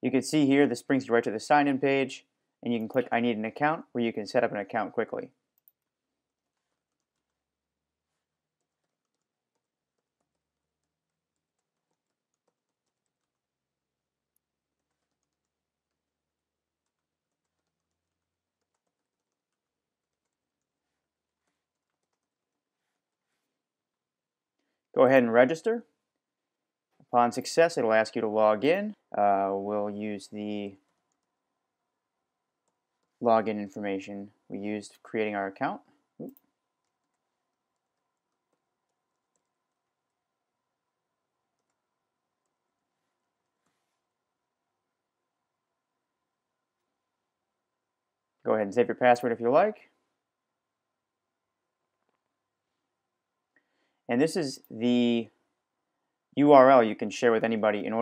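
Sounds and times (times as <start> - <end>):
keyboard typing: 5.5 - 23.2, 30.8 - 31.4, 36.2 - 40.3, 41.3 - 43.8
keyboard keys clicking: 16.8 - 20.4.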